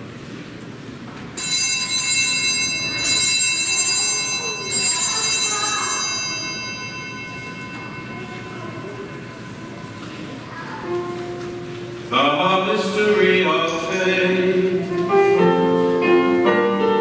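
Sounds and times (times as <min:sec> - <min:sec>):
altar bells ringing: 0:01.4 - 0:11.7.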